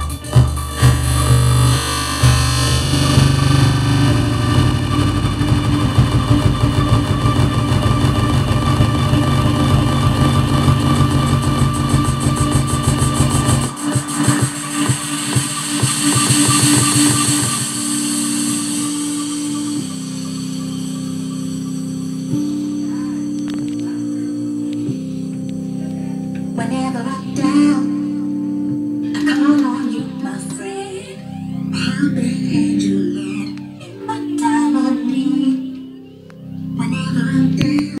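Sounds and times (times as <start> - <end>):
electronic dance music: 0.0 - 28.1.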